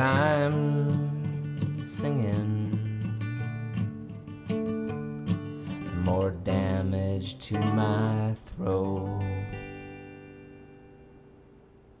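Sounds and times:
acoustic guitar chord ringing: 0.0 - 11.8.

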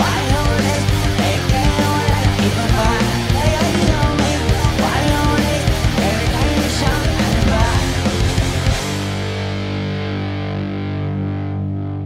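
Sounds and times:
distorted guitar and bass chord: 0.0 - 12.0.

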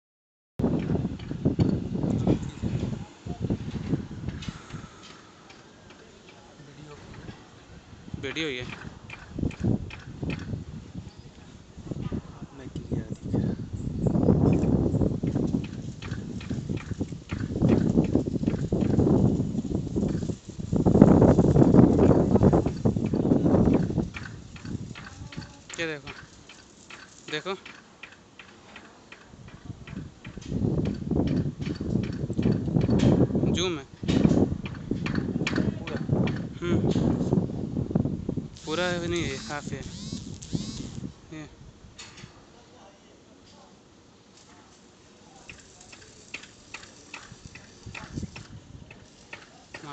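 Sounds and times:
metallic ticks and taps: 0.8 - 2.2, 22.7 - 33.0.

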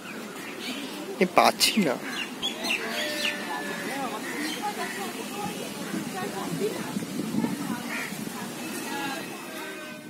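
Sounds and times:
birds chirping: 0.0 - 10.0
outdoor background noise: 0.0 - 10.0.

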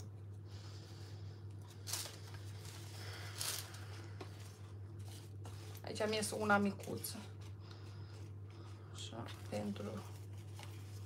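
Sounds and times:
steady low hum: 0.0 - 11.0
parchment paper crinkling: 1.4 - 11.0.

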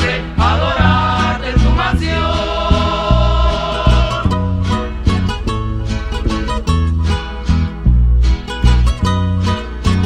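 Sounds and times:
male vocal group singing a hymn: 0.0 - 4.5
acoustic guitars: 0.0 - 10.0
bass notes: 0.0 - 10.0.

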